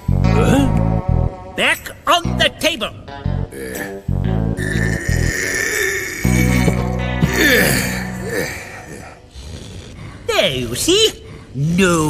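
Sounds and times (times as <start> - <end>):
cartoon soundtrack music: 0.0 - 9.0.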